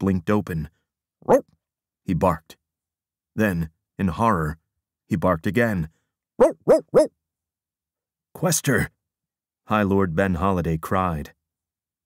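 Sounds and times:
dog barking: 1.2 - 1.5, 6.4 - 7.1.

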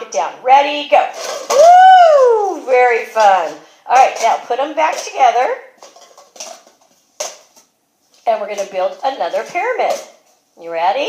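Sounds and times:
plastic cups clacking: 2.6 - 7.7.

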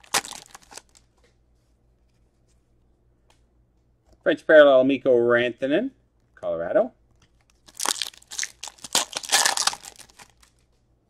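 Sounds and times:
foil wrapper crinkling: 0.0 - 1.2, 7.3 - 10.7.

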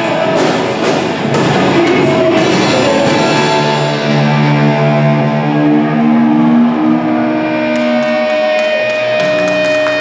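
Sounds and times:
distorted electric guitars: 0.0 - 10.0
long held guitar notes: 0.0 - 10.0.

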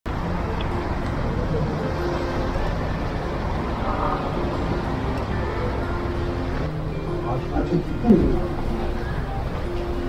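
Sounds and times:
road traffic passing: 0.1 - 10.0
faint voices: 0.2 - 10.0.

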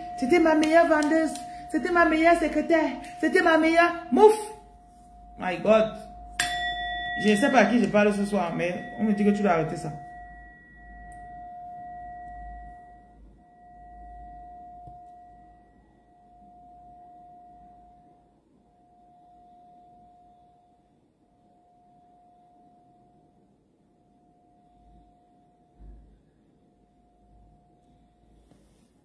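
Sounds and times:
bell-like ringing tone: 0.0 - 23.5.

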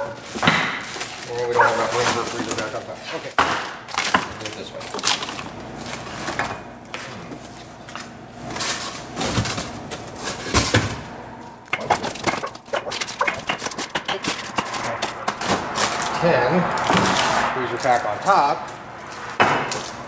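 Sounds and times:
frozen packs knocking and rustling: 0.0 - 3.0.

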